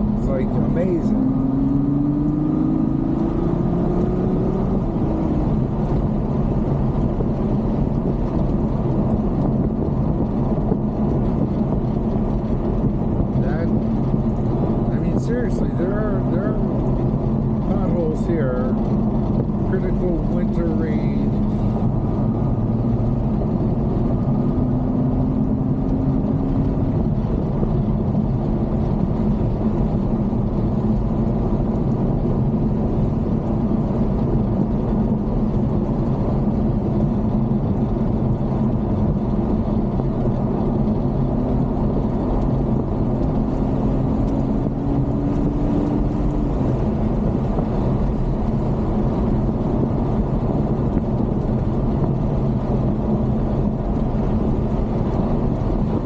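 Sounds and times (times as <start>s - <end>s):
car engine drone: 0.0s - 56.0s
road and tyre noise: 0.0s - 56.0s.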